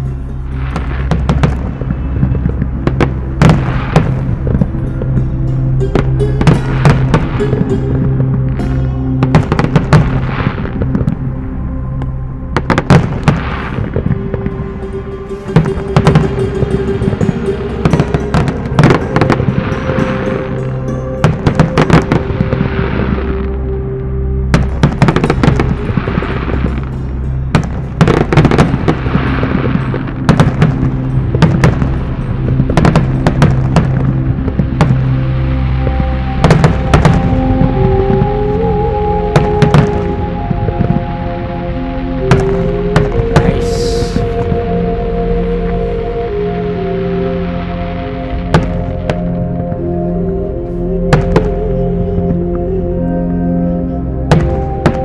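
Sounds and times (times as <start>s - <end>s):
fireworks crackling: 0.0s - 5.2s, 6.0s - 11.3s, 12.6s - 23.7s, 24.6s - 41.1s, 42.2s - 44.7s
background music sustained tones: 0.0s - 55.0s
fireworks bursting with bangs: 0.6s - 5.2s, 5.9s - 8.6s, 9.2s - 11.2s, 12.6s - 14.7s, 15.4s - 23.5s, 24.5s - 26.9s, 27.5s - 35.2s, 35.9s - 38.4s, 39.3s - 41.1s, 42.2s - 44.7s, 48.4s - 49.4s, 54.3s - 55.0s.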